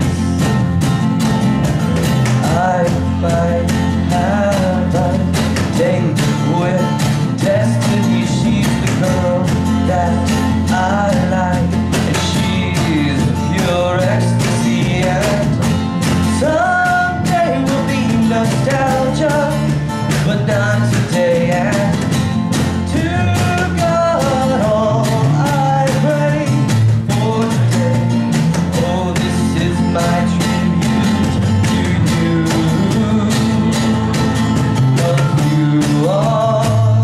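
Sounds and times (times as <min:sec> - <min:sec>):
man singing: 0:00.0 - 0:00.6, 0:01.6 - 0:37.0
bass guitar: 0:00.0 - 0:37.0
cajon beating a rhythm: 0:00.0 - 0:37.0
strummed acoustic guitar: 0:00.0 - 0:37.0.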